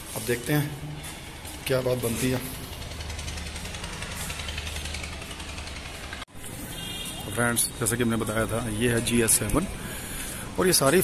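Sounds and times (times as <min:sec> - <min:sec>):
low hum: 0:01.3 - 0:06.3.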